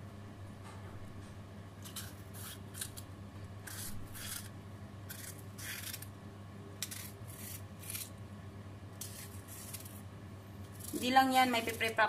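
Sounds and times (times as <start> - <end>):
steady low hum: 0.0 - 12.0
knife slicing bell pepper: 1.8 - 6.1, 6.8 - 8.1.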